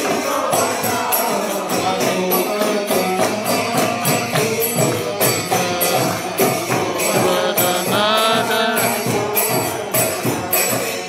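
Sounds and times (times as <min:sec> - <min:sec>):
person singing: 0:00.0 - 0:10.8
group devotional chanting: 0:00.0 - 0:11.0
jingling percussion: 0:00.0 - 0:11.0.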